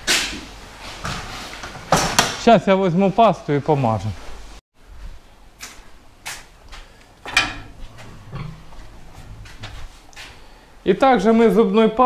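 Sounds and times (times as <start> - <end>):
metal gate rattling and clanking: 7.2 - 9.8.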